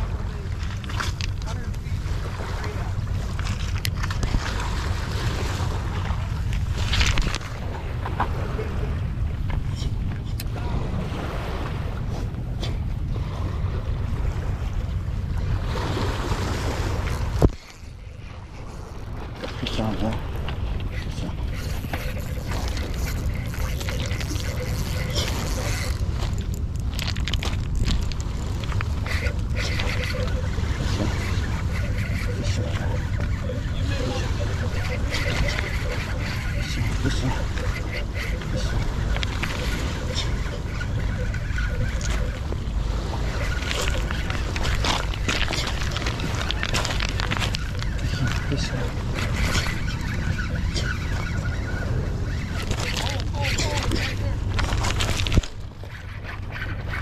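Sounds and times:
low wind rumble on microphone: 0.0s - 57.0s
water: 0.0s - 57.0s.

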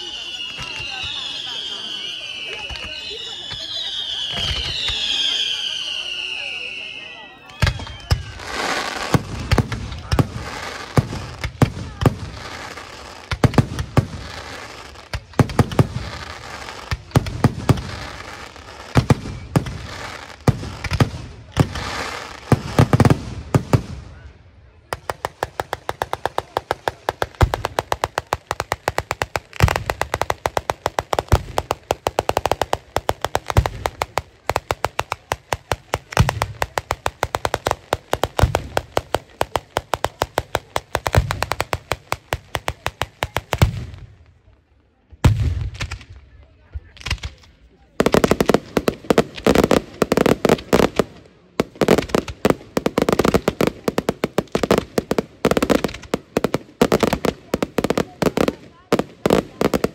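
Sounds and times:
whistling fireworks: 0.0s - 44.2s, 45.1s - 59.9s
firework bangs and booms: 0.0s - 44.4s, 45.1s - 59.9s.

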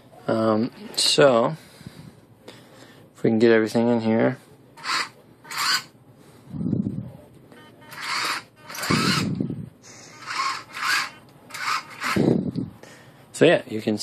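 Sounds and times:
small gear motors whirring: 4.8s - 5.9s, 7.9s - 9.4s, 10.1s - 12.3s.

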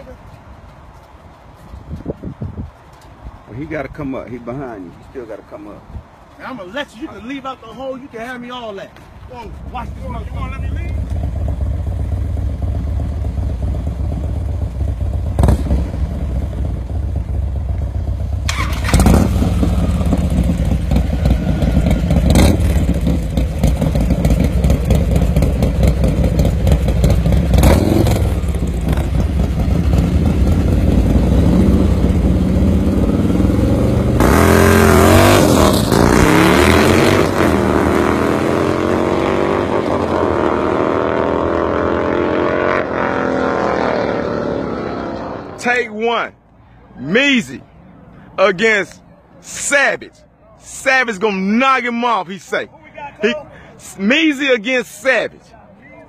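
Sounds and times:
motorcycle engines revving: 9.3s - 46.2s.

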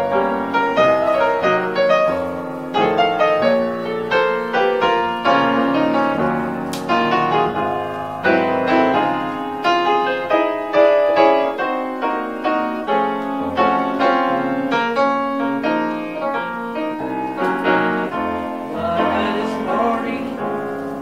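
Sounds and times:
grand piano playing: 0.0s - 21.0s.

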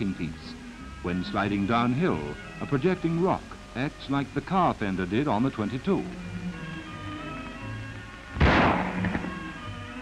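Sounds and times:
background music: 0.0s - 10.0s
rifle shot: 8.4s - 9.4s.

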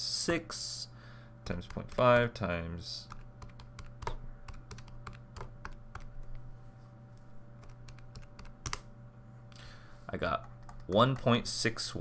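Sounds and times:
steady low hum: 0.0s - 12.0s
calculator keys clicking: 3.1s - 6.3s, 7.6s - 8.8s.

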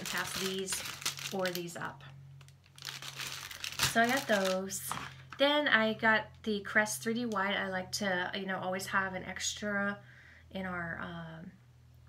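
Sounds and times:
plastic packaging crinkling: 0.0s - 5.4s.

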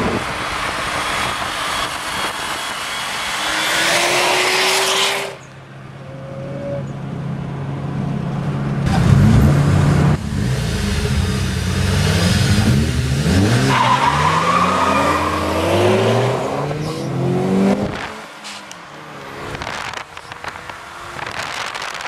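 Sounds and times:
car engine accelerating: 8.8s - 22.0s.

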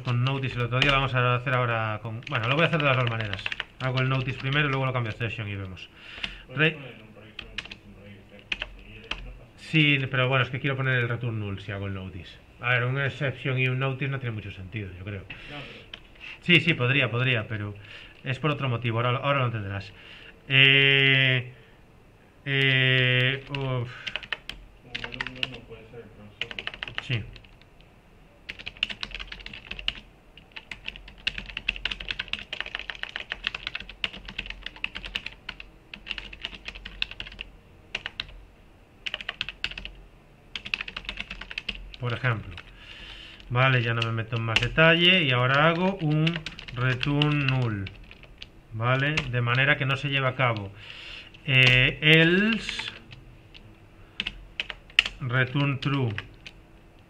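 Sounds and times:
computer keyboard typing: 0.0s - 6.4s, 7.0s - 9.4s, 15.9s - 16.1s, 22.6s - 25.7s, 26.4s - 27.7s, 28.5s - 38.4s, 39.0s - 42.8s, 43.4s - 50.7s, 51.3s - 53.6s, 54.2s - 56.6s.

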